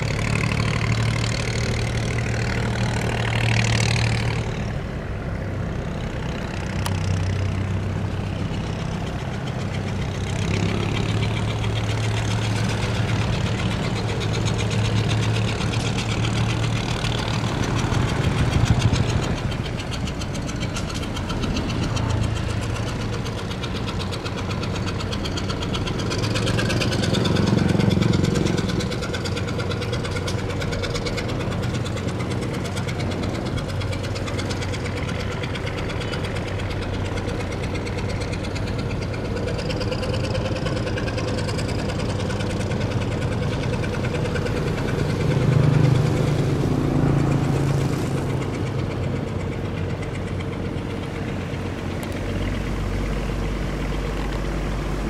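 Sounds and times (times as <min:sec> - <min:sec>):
boat engine humming: 0:00.0 - 0:55.0.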